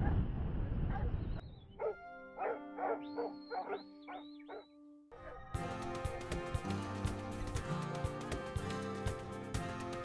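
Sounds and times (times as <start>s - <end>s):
dog barking: 0.9s - 1.2s, 1.8s - 5.4s
background music: 1.7s - 10.0s.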